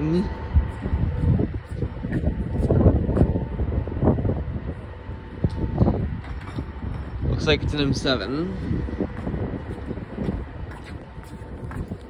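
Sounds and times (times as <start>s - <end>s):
electric train rumble: 0.0s - 12.0s
wind noise on microphone: 0.0s - 12.0s.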